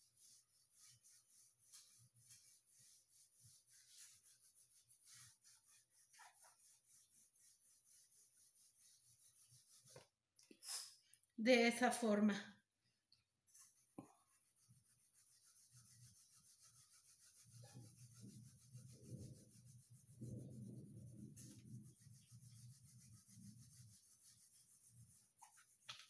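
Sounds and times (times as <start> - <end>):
pencil shading on paper: 0.0 - 10.0, 13.7 - 26.0.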